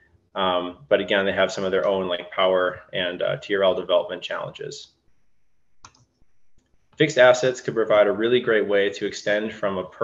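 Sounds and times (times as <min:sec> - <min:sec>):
computer mouse clicks: 0:05.7 - 0:06.8.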